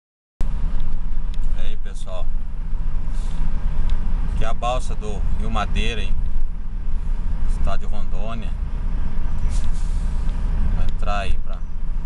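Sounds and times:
vehicle engine and tyres rumbling: 0:00.4 - 0:12.0.

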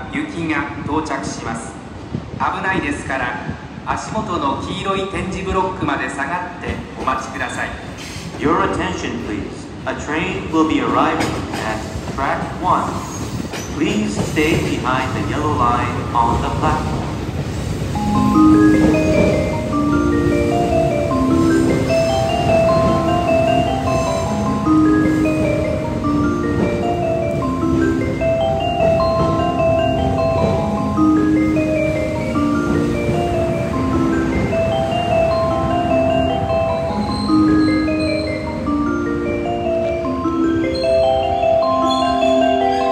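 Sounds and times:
electric train rumbling: 0:00.0 - 0:42.9
bell-like melody over speakers: 0:17.8 - 0:42.9.

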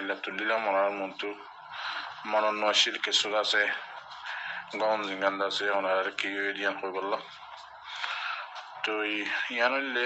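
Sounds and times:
man talking: 0:00.0 - 0:07.6, 0:08.7 - 0:10.0.

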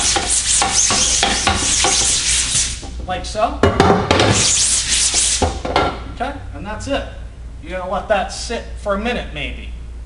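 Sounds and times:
hand brush scrubbing mesh: 0:00.0 - 0:02.8, 0:04.4 - 0:05.5.

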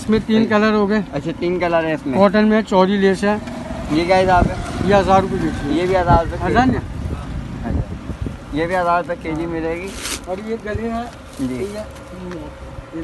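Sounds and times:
people talking: 0:00.0 - 0:07.9.

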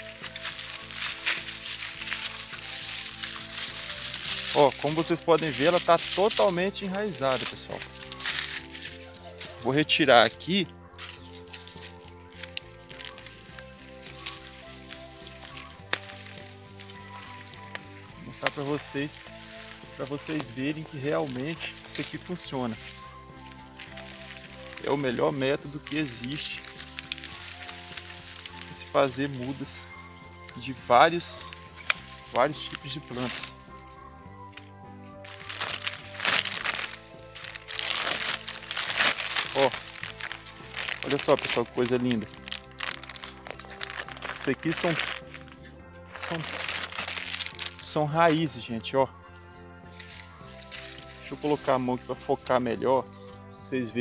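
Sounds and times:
wrapping clicking and crinkling: 0:00.0 - 0:10.4, 0:11.0 - 0:33.9, 0:34.5 - 0:48.0, 0:49.9 - 0:51.8
background music: 0:00.0 - 0:54.0.

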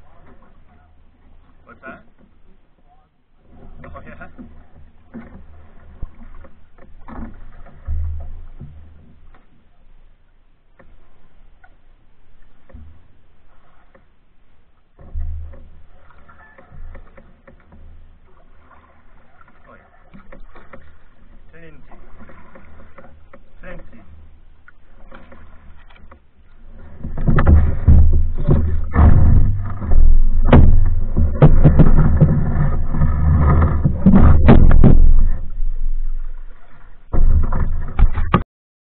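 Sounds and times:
paddle knocking canoe hull: 0:00.0 - 0:38.4
water moving around boats: 0:00.0 - 0:38.4
loud low thump: 0:27.2 - 0:36.2.

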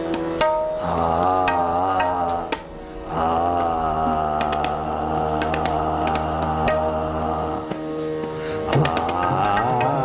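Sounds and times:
tabla strokes: 0:00.0 - 0:10.0
harmonium playing sustained chords: 0:04.8 - 0:10.0.

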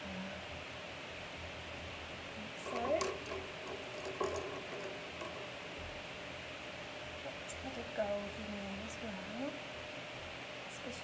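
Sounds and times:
steady room hiss: 0:00.0 - 0:11.0.

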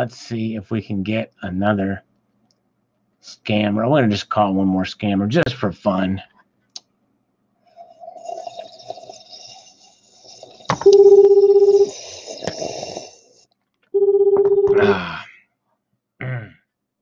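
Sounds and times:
phone ringback tone: 0:10.8 - 0:11.9, 0:14.0 - 0:14.9.

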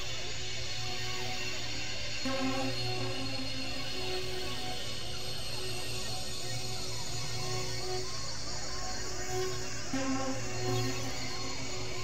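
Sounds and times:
synthesizer drone music: 0:02.2 - 0:04.8.

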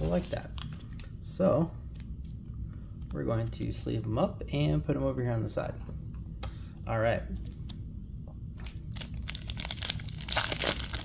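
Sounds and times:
wrapper crinkling and tearing: 0:08.6 - 0:11.0.

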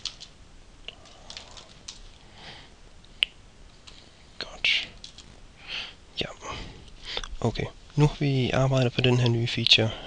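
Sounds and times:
breathy whispering: 0:00.9 - 0:02.7, 0:04.2 - 0:07.8.

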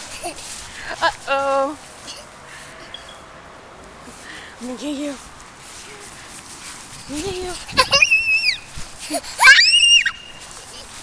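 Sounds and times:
child squealing: 0:07.7 - 0:10.9.

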